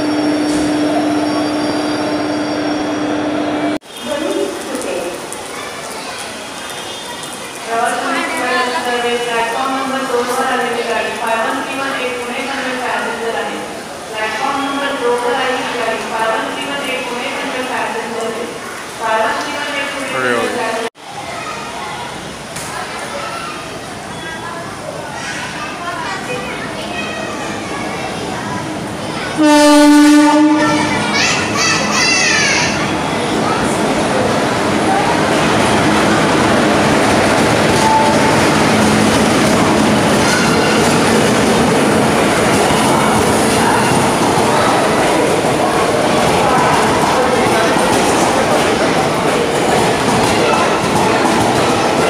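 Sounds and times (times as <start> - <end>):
approaching train rumble: 25.8 - 52.0
locomotive air horn blast: 29.4 - 30.9.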